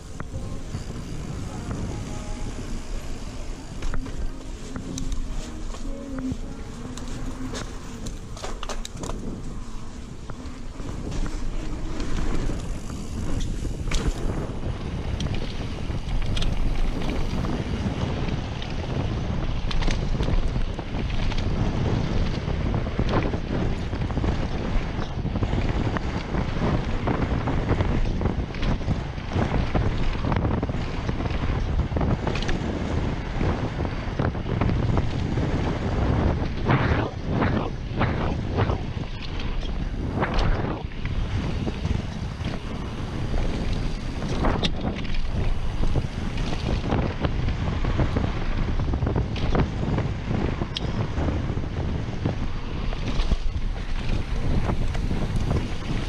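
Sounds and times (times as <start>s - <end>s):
bike rattling over bumps: 0.0s - 56.0s
wind rushing over microphone: 0.0s - 56.0s.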